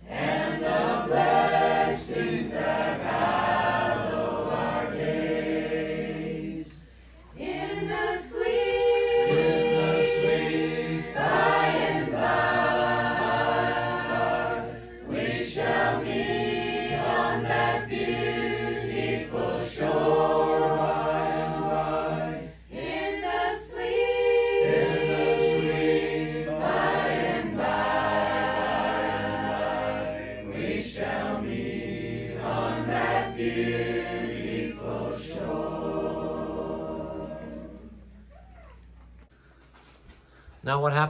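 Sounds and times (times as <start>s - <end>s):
mixed choir singing a hymn: 0.0s - 38.2s.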